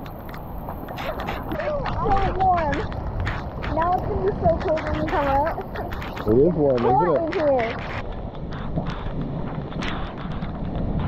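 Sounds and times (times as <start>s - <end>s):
heavy rain on pool water: 0.0s - 11.0s
girl's voice: 1.6s - 2.9s, 3.7s - 5.9s, 6.8s - 7.8s.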